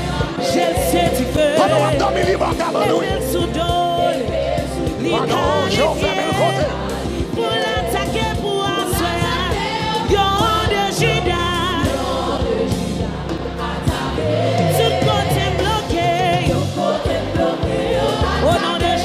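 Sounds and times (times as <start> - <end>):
band with bass and drums: 0.0 - 19.0
choir singing: 0.0 - 19.0
woman singing with vibrato: 0.6 - 4.3.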